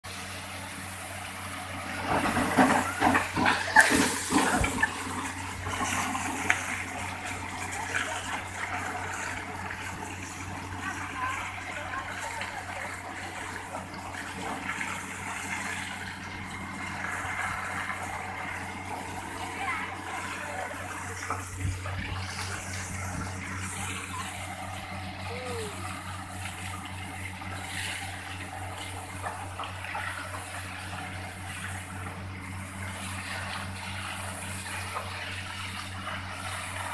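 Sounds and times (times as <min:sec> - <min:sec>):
drilling rig engine droning: 0:00.1 - 0:36.9
water spray gushing: 0:00.1 - 0:36.9.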